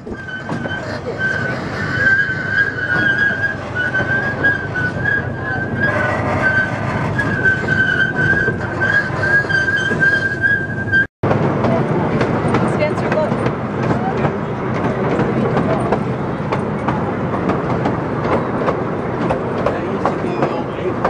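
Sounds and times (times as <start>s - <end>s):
high wavering squeal: 0.0s - 11.1s
train wheels rumbling on rails: 0.0s - 21.0s.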